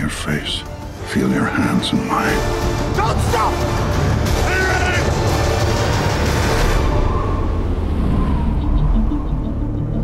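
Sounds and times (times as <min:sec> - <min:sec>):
dense trailer music: 0:00.0 - 0:10.0.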